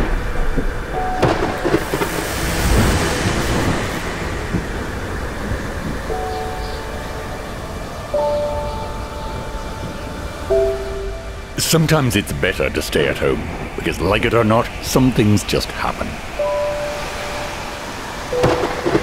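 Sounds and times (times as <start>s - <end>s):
held synth notes: 0.0s - 12.8s, 16.2s - 19.0s
heavy rain: 0.0s - 19.0s
thunder crack and rumble: 0.0s - 19.0s.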